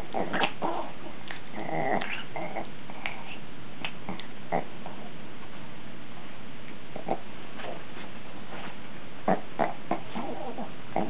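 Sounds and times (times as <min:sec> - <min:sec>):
small dogs growling in play: 0:00.0 - 0:03.4, 0:04.0 - 0:05.2, 0:06.9 - 0:07.8, 0:09.2 - 0:11.0
dog whining: 0:09.3 - 0:11.0.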